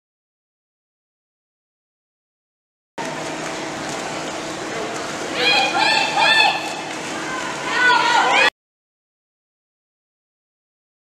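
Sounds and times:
water splashing in indoor pool: 3.0s - 8.5s.

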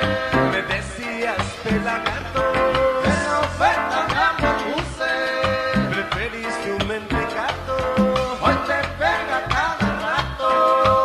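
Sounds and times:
latin band playing instrumental: 0.0s - 11.0s.

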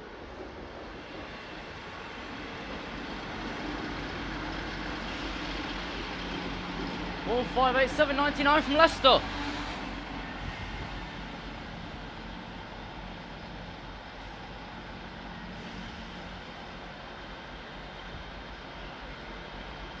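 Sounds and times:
diesel train passing slowly: 0.0s - 20.0s.

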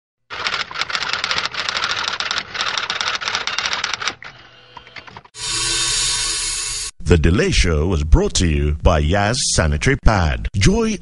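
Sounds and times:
typewriter-like mechanical clatter: 0.3s - 4.4s.

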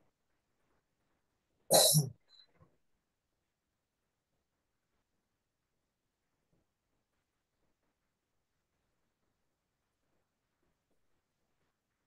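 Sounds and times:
short cough: 1.7s - 2.1s.

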